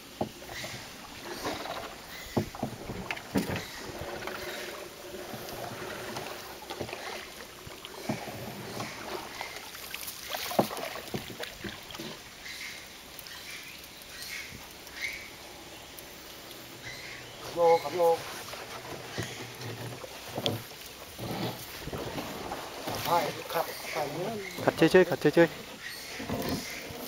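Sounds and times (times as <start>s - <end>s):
water lapping around boat: 0.0s - 27.0s
hollow knocks against hull: 0.1s - 4.6s, 10.3s - 12.2s, 18.6s - 23.6s.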